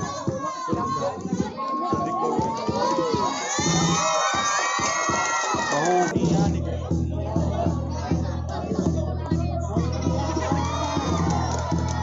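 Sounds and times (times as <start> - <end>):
crowd of children cheering: 0.0 - 6.2, 9.8 - 12.0.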